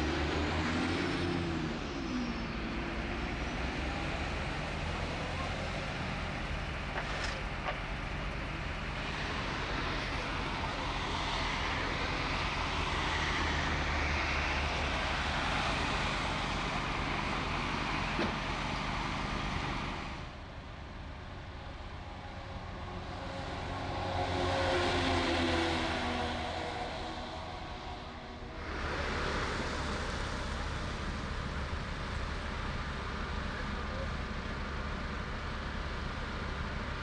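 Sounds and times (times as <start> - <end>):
fire truck engine approaching: 0.0 - 37.0
motorway traffic noise: 0.0 - 37.0.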